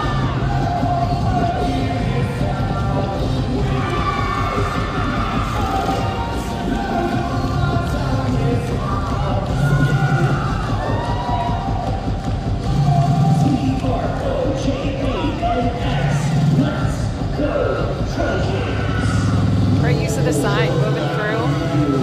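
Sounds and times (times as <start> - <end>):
crowd cheering: 0.0 - 19.8
loud cheerleading music mix: 0.0 - 22.0.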